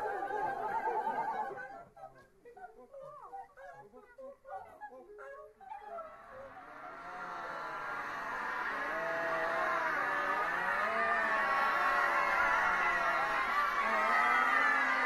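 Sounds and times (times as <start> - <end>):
choir making animal-like sounds: 0.0 - 15.0.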